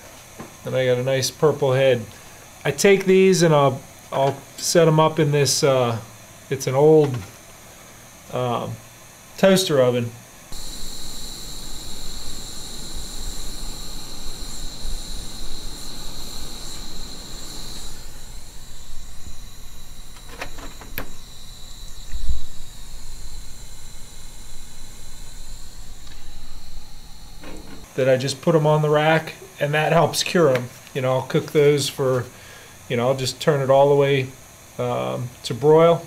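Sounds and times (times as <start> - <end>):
propane torch burning: 0.0 - 35.6.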